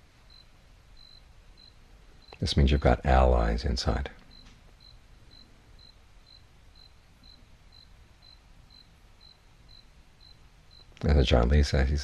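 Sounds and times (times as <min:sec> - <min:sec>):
faint ticking pips: 0:00.0 - 0:12.0
low room hum: 0:00.0 - 0:12.0.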